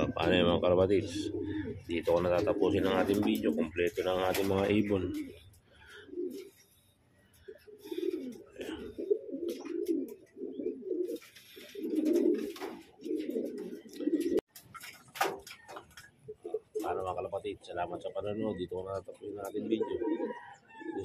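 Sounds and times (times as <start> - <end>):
pigeons cooing: 0.0 - 14.5, 15.2 - 21.0.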